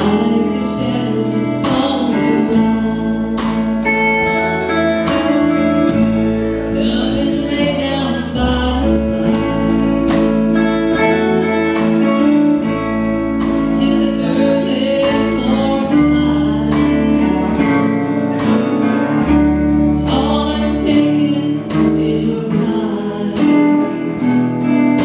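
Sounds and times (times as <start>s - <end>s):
bass guitar: 0.0s - 25.0s
drum kit beat: 0.0s - 25.0s
guitars: 0.0s - 25.0s
woman singing: 0.0s - 25.0s.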